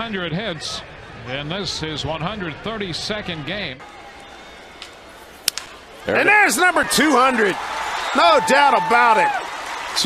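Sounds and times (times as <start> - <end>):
crowd noise: 0.0 - 10.0
bat cracking on baseball: 4.8 - 5.9.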